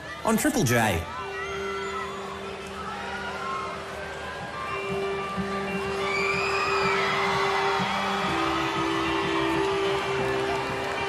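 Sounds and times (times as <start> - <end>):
crowd whooping and cheering: 0.0 - 11.0.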